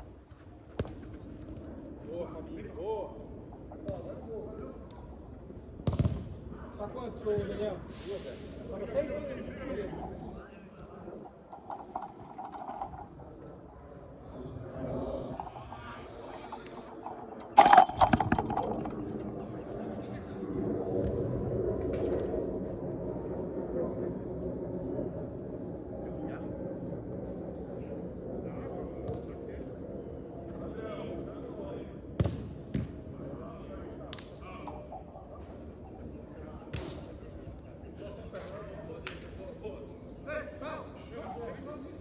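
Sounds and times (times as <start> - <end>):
loud clattering impact: 16.3 - 19.0.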